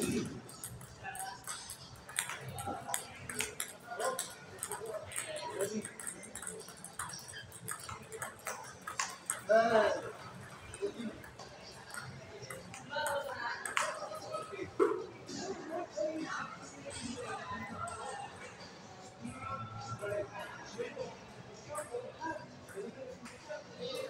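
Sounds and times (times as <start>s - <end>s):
table tennis ball clicking: 0.0s - 9.5s, 11.3s - 14.0s
voices: 0.0s - 24.0s.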